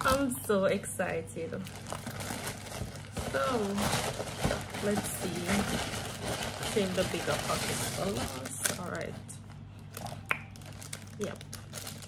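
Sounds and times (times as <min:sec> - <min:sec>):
plastic bag crinkling: 0:00.0 - 0:00.6, 0:01.6 - 0:12.0.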